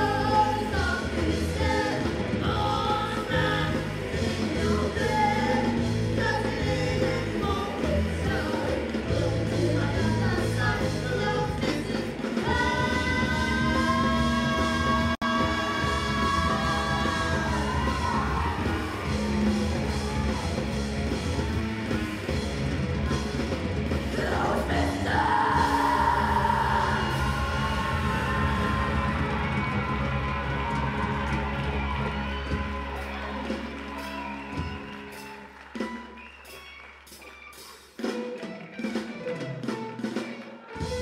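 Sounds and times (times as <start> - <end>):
live rock band: 0.0 - 41.0
voices holding long note: 24.0 - 35.0.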